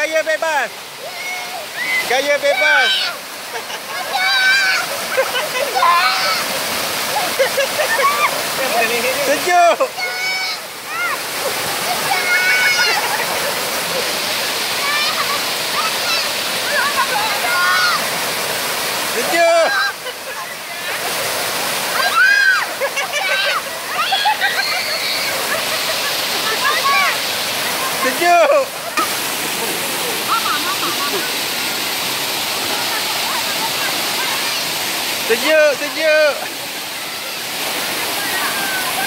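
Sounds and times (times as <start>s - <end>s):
waterfall pouring into pool: 0.0s - 39.0s
people shrieking and giggling: 2.9s - 8.4s, 11.4s - 14.1s, 22.0s - 27.1s, 28.9s - 31.4s.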